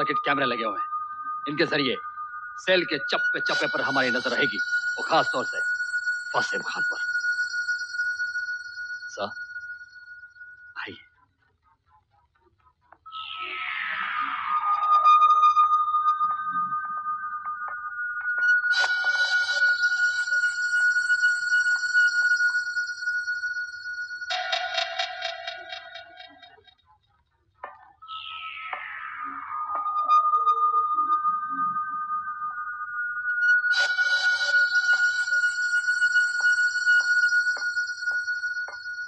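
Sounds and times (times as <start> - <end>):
steady high electronic tone: 0.0 - 11.0, 13.1 - 26.7, 28.0 - 39.0
shimmering high tones: 0.0 - 11.2, 13.1 - 26.8, 28.0 - 39.0.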